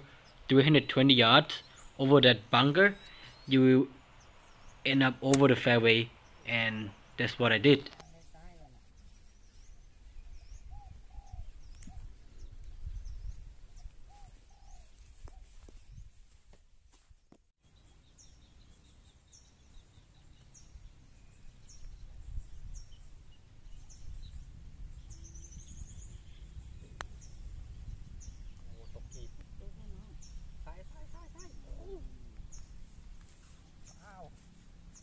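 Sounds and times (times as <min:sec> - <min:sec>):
birds calling: 0:00.0 - 0:16.1, 0:17.6 - 0:35.0
wind rumble on microphone: 0:08.9 - 0:16.4, 0:20.5 - 0:33.2.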